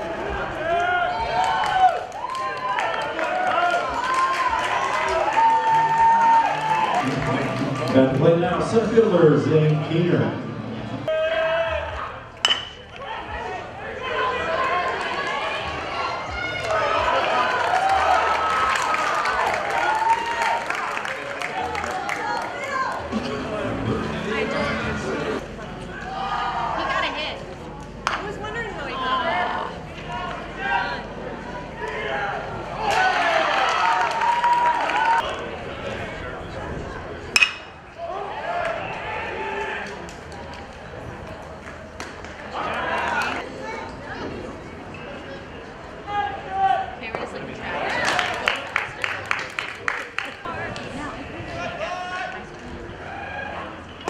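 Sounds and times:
crowd shouting and cheering: 0.0 - 54.0
metal bat hitting ball: 12.4 - 12.9, 37.4 - 37.7.

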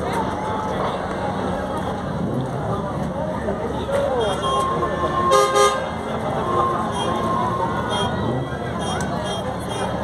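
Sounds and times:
crowd voices: 0.0 - 10.0
vehicle horn honking: 4.2 - 10.0.

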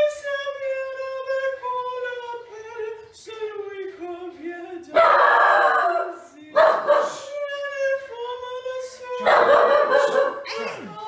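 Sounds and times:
dog barking and howling: 5.0 - 7.3, 9.2 - 10.8.

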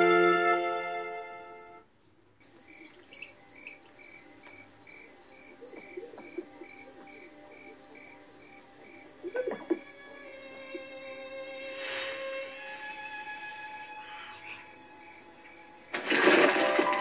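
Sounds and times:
crickets chirping: 2.4 - 17.0.

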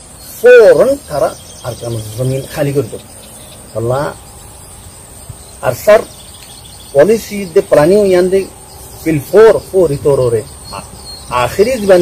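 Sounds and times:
insects chirring: 0.0 - 12.0
man speaking: 0.3 - 3.1, 3.7 - 4.2, 5.6 - 6.2, 6.9 - 12.0.

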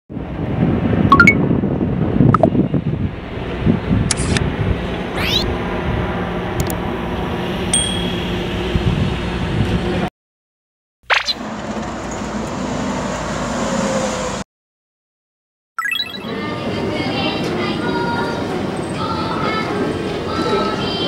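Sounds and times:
chime-like dings: 7.8 - 8.3
high ding: 7.8 - 8.4.

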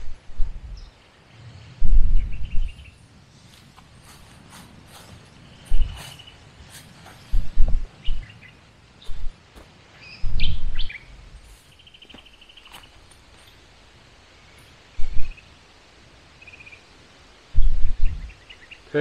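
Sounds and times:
birds chirping: 0.0 - 19.0
bird trill: 10.0 - 11.1.

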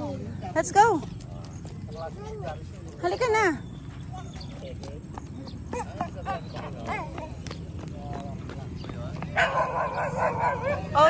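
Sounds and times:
faint distant voices: 0.0 - 11.0
footsteps on concrete: 0.0 - 11.0.

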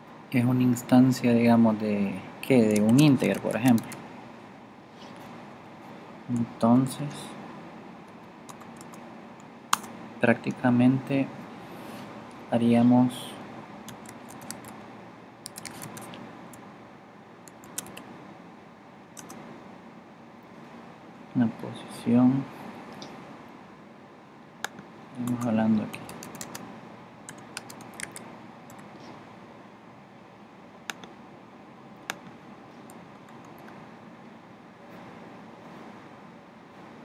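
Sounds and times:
typing on a computer keyboard: 2.6 - 4.0, 8.5 - 9.0, 13.9 - 14.8, 15.4 - 16.6, 17.5 - 18.1, 19.2 - 19.4, 24.6 - 26.6, 27.3 - 28.9, 32.9 - 33.8.

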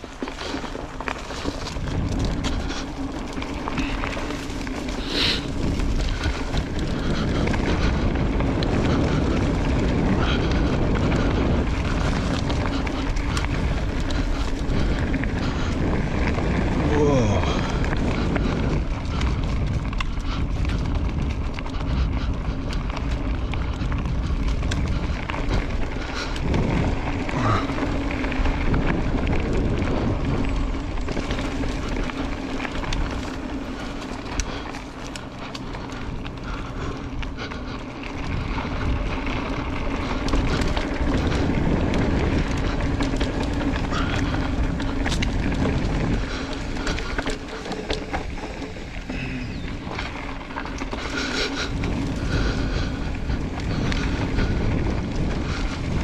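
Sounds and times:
bike clicks and rattles: 0.0 - 56.0
wind noise on microphone: 0.0 - 56.0.

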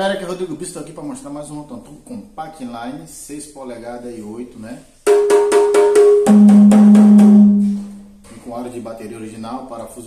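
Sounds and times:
rototoms struck in quick run: 5.1 - 8.0.

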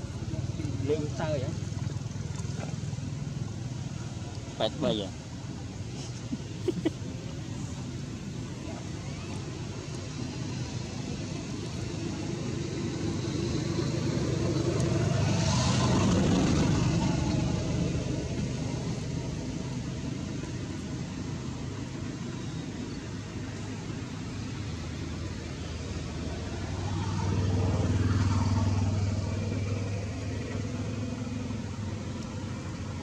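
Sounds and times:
motor vehicle passing by: 8.6 - 20.6, 24.4 - 33.0.

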